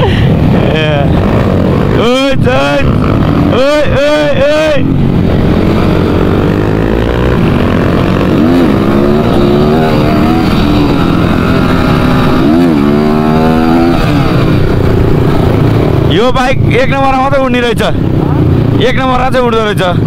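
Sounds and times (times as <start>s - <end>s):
dirt bike engine revving: 0.0s - 20.0s.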